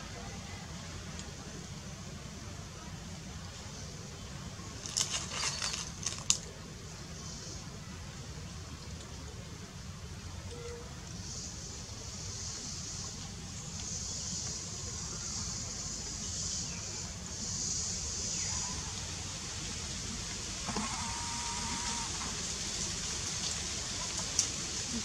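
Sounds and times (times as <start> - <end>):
steady high hiss: 0.0 - 25.0.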